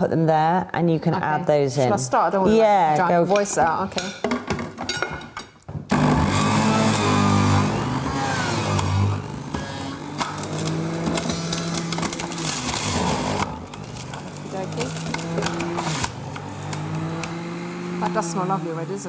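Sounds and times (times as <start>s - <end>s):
juicer motor humming: 5.9s - 19.0s.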